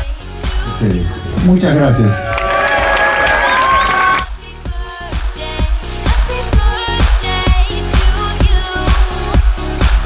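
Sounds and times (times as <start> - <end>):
dance music with steady beat: 0.0 - 10.0
crowd cheering and applauding: 1.4 - 4.4.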